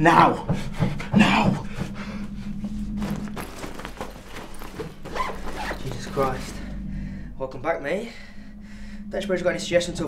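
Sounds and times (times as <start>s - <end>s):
cloth rustling and scraping: 2.8s - 6.7s
zip being worked: 4.2s - 6.2s.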